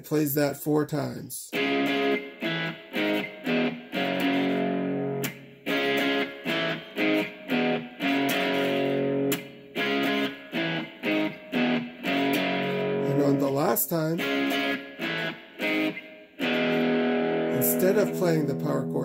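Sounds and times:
electric guitar power chords: 0:01.5 - 0:19.0.

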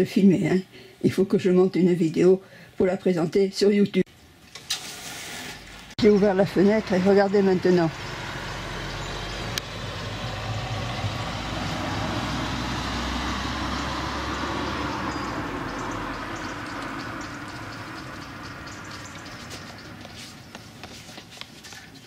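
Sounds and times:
passing traffic engine rumble: 0:05.8 - 0:21.4.

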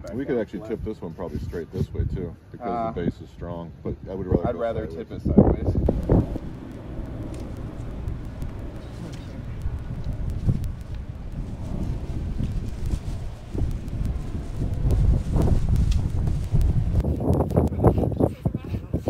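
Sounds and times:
wind rumble on microphone: 0:05.1 - 0:19.0.

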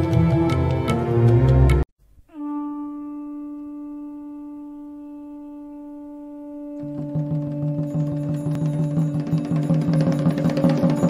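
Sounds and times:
horn-like wind instrument note: 0:02.3 - 0:09.3.

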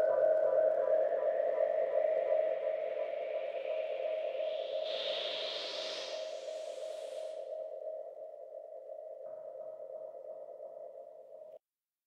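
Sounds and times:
faint high whine: 0:00.0 - 0:11.6
breathy hiss: 0:04.4 - 0:07.5.

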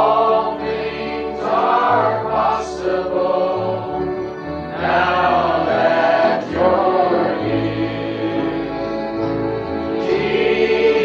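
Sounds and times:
congregation singing a hymn: 0:00.0 - 0:11.0
held instrumental bass notes: 0:00.0 - 0:11.0.

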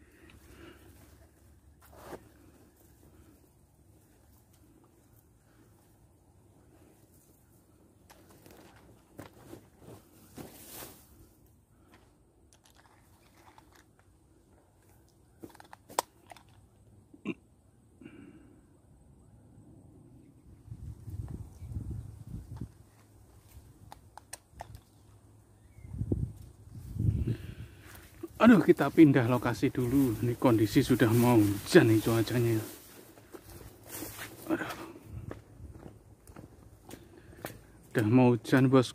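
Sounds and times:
grass and leaves rustling: 0:00.0 - 0:11.9, 0:20.7 - 0:38.8
camera handling clicks: 0:23.8 - 0:24.9.

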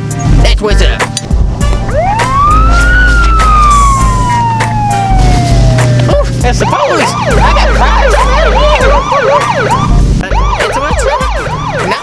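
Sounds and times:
background music with steady beat: 0:00.0 - 0:12.0
siren wail: 0:01.8 - 0:12.0.

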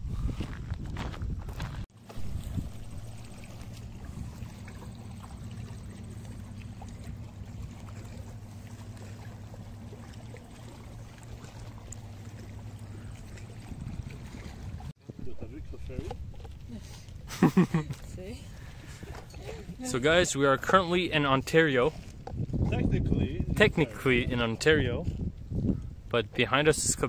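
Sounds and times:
water noise: 0:00.0 - 0:27.0
wind: 0:00.0 - 0:27.0
low drone with faint hum: 0:02.2 - 0:19.4.

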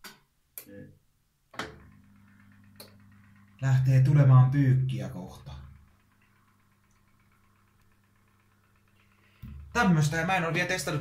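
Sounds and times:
washing machine click: 0:01.6 - 0:02.0
washing machine low hum: 0:01.6 - 0:11.0.

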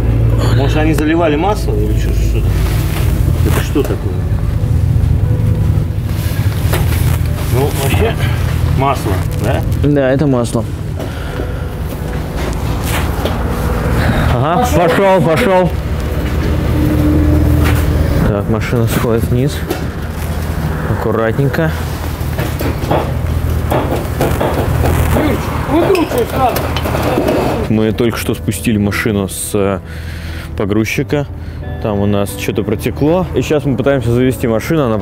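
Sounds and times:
low hum: 0:00.0 - 0:25.8
vehicle engine rumbling: 0:00.0 - 0:28.4
vehicle clanking on metal ramps: 0:25.7 - 0:27.7.

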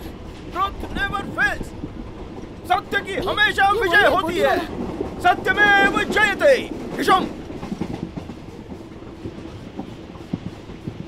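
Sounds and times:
train carriage running rumble: 0:00.0 - 0:11.0
wheels clattering over rails: 0:00.0 - 0:11.0.

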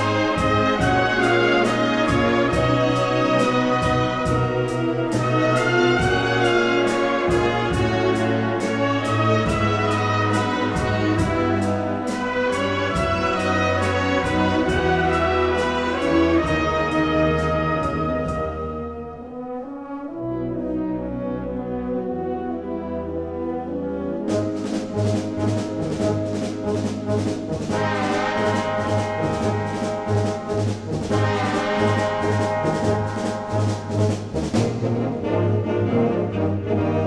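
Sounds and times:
rhythmic drum beat: 0:00.0 - 0:18.6, 0:24.3 - 0:35.3
brass chords: 0:00.0 - 0:37.0.

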